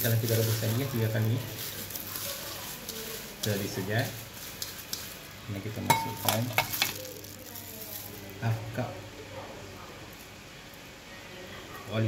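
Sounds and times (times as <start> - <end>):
soft rustling of peel sliding: 0.0 - 8.8
steady room hiss: 0.0 - 12.0.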